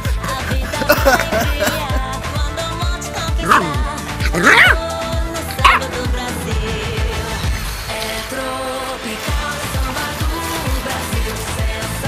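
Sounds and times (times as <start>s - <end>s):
background music with beat: 0.0s - 12.0s
puppy yipping: 3.4s - 4.8s, 5.5s - 5.9s.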